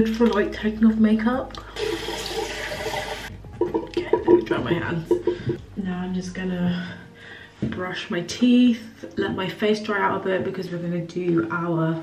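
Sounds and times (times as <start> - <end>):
water running from sink tap: 1.6 - 3.3.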